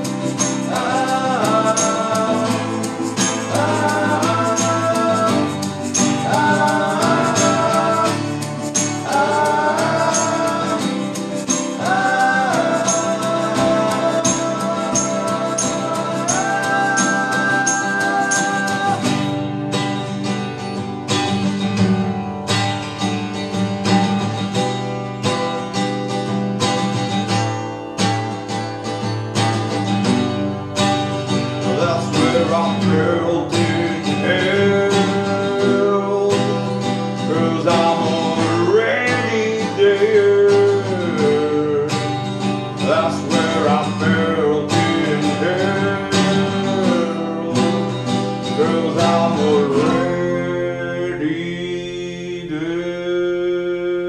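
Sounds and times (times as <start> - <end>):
sliding bending guitar melody: 0.0 - 53.0
acoustic guitars strumming chords: 0.0 - 54.0.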